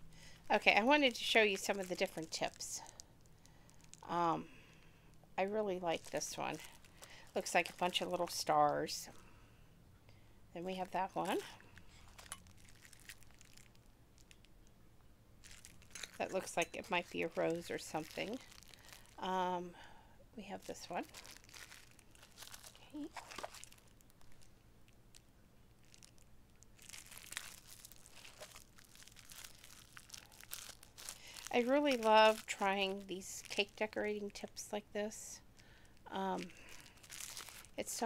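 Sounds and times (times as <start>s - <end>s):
plastic wrapping crinkling: 0.4s - 9.0s, 10.7s - 14.7s, 15.4s - 19.5s, 20.4s - 34.7s, 35.4s - 38.0s.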